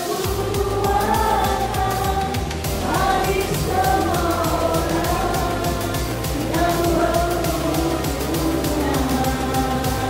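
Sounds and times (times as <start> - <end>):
congregation singing a hymn: 0.0 - 10.0
instrumental accompaniment with beat: 0.0 - 10.0.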